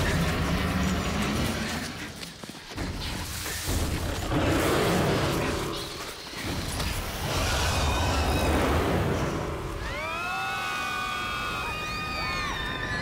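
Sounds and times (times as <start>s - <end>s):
low rumble: 2.8s - 10.3s
rising tonal shriek: 7.0s - 13.0s.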